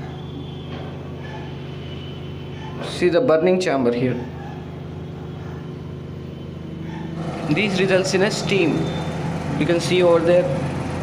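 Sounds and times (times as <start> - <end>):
industrial machinery hum: 4.2 - 11.0.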